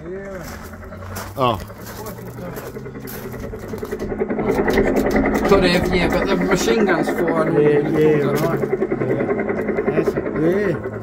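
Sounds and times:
electronic helicopter engine hum: 0.0s - 11.0s.

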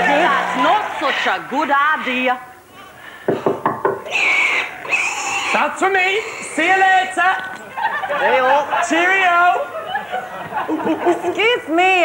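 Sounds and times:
knocks on wooden door: 3.3s - 4.0s.

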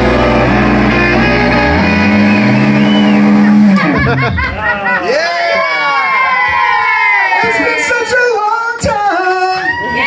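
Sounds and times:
electric guitars sustained chord: 0.0s - 4.4s
live rock band: 0.0s - 5.0s.

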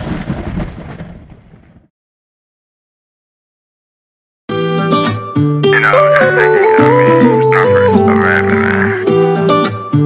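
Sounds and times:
thunder crack and rumble: 0.0s - 1.9s.

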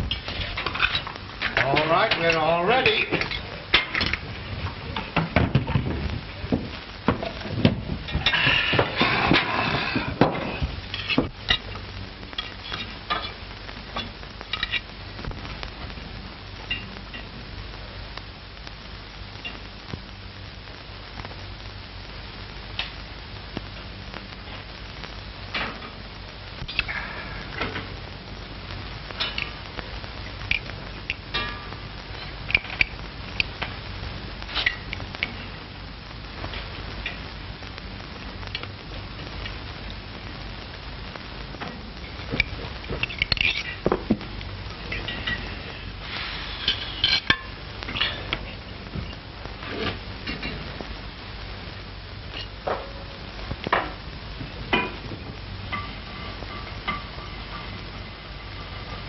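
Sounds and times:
film soundtrack hiss and hum: 0.0s - 59.0s.

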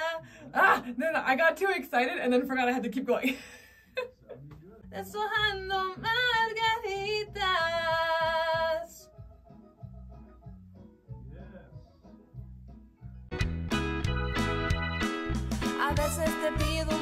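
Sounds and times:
woman singing with vibrato: 0.0s - 0.2s, 5.0s - 9.0s, 15.8s - 17.0s
backing track with low beat: 4.3s - 17.0s.

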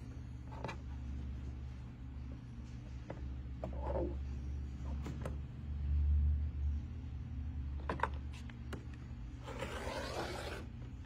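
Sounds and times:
rotary cutter scraping through fabric: 9.4s - 10.8s.

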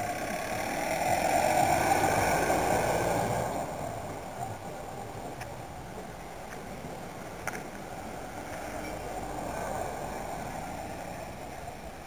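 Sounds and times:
vehicle running: 0.0s - 12.0s.

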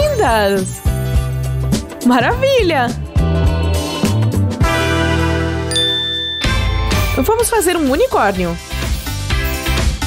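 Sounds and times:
background music: 0.0s - 10.0s
bright ringing chime: 5.7s - 7.5s.

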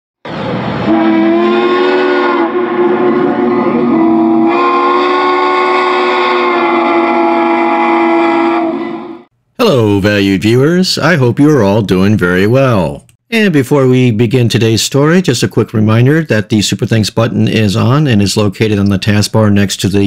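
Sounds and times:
steam whistle blast: 0.3s - 9.3s.

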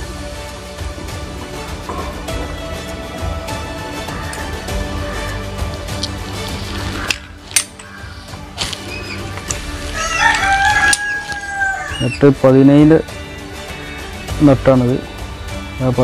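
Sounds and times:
faint background music: 0.0s - 16.0s
rooster crowing: 9.8s - 12.2s.

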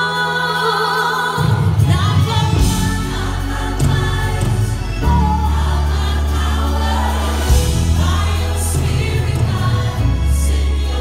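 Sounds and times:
band playing gospel music: 0.0s - 11.0s
choir singing: 0.0s - 11.0s
women singing lead: 0.0s - 11.0s.

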